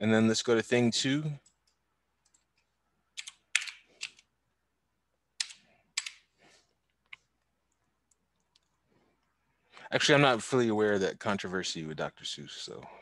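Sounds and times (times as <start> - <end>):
computer keyboard keystrokes: 3.2 - 4.2, 5.4 - 6.2.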